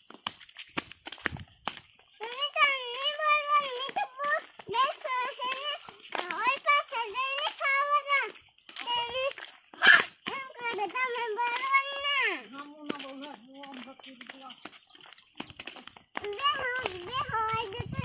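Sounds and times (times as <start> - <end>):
young child babbling and calling: 2.2 - 12.8, 16.2 - 18.0
child's sharp cry: 9.8 - 10.1.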